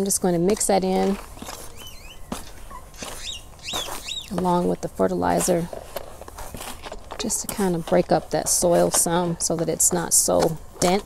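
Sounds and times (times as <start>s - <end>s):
plastic scoop stirring soil: 0.0s - 11.0s
faint bird chirping: 1.4s - 4.4s.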